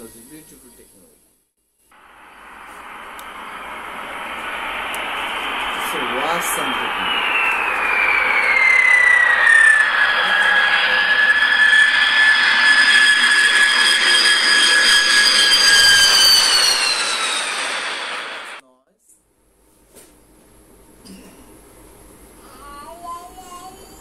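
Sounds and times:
loud jet engine whine: 2.0 - 18.6.

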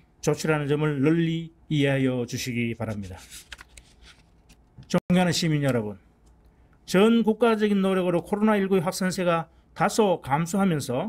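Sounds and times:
paper rustling: 2.8 - 4.7.

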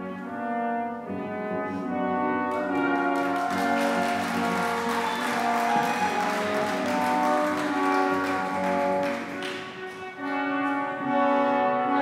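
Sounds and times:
brass ensemble playing chords: 0.0 - 12.0.

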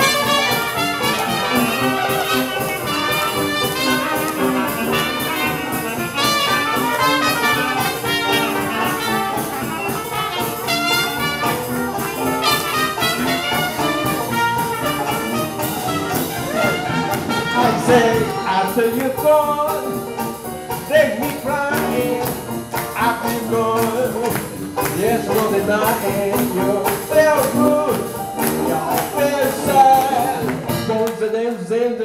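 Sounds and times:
jazz band playing: 0.0 - 31.4.

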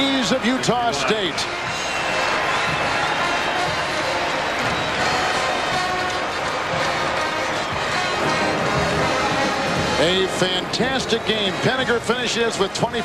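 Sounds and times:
brass band playing held notes: 0.0 - 13.0
crowd noise: 0.0 - 13.0.

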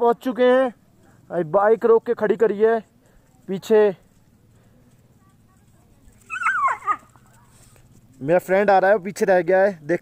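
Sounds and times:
animal high-pitched whine: 6.2 - 7.2.

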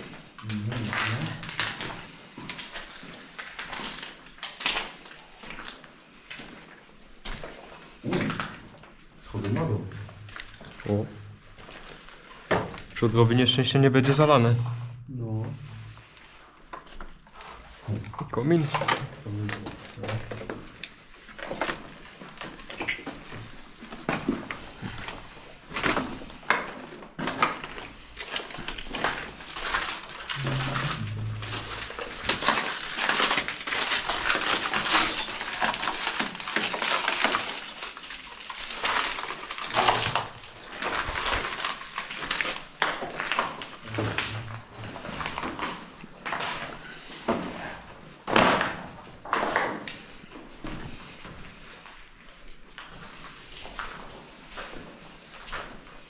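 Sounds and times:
footsteps crunching over rubble: 20.4 - 43.9
debris clinking and crackling: 25.7 - 44.3.

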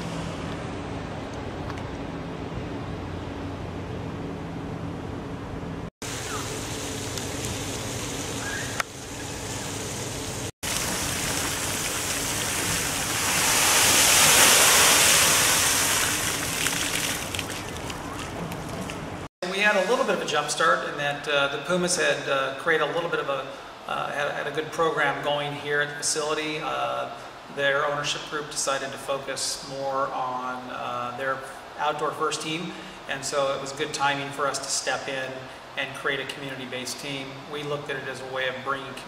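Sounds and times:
water splashing from fountains: 6.1 - 19.3
ferry engines humming: 16.2 - 20.0.

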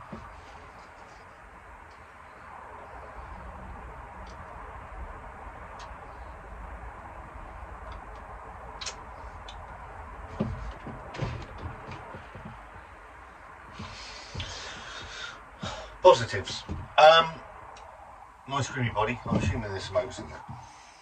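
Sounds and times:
low room hum: 0.0 - 21.0
soft knocks: 10.3 - 12.8, 16.5 - 17.0, 19.2 - 19.6.

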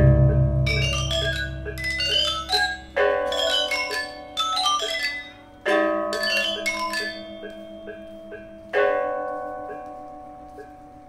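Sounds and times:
gamelan metallophone chords: 0.0 - 9.2.

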